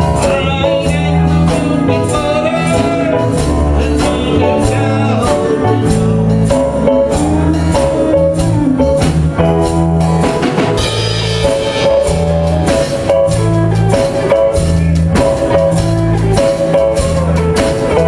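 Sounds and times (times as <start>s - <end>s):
drum kit beat: 0.0s - 18.0s
electric bass: 0.0s - 18.0s
guitar: 0.0s - 18.0s.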